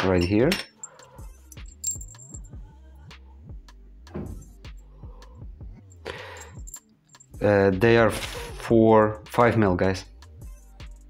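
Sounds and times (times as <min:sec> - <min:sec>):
soft background music: 0:00.0 - 0:11.0
small metal pieces clinking: 0:00.6 - 0:02.5, 0:06.1 - 0:07.3.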